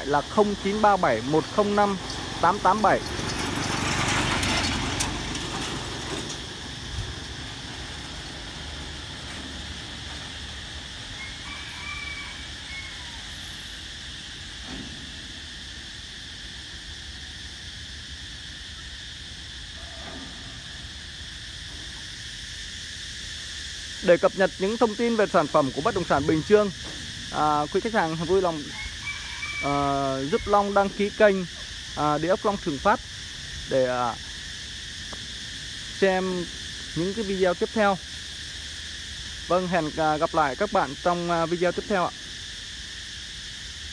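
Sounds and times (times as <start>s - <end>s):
high-pitched insect drone: 0.0s - 3.4s, 4.7s - 43.9s
faint outdoor background noise: 0.0s - 43.9s.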